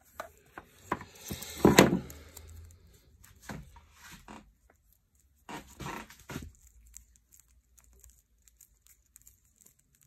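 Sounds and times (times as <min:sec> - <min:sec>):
rubber cable rustling scrapes: 0:00.0 - 0:10.0.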